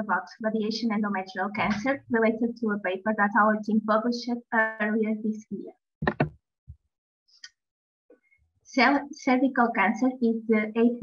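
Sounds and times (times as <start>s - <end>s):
soft low thump: 6.0s - 6.4s.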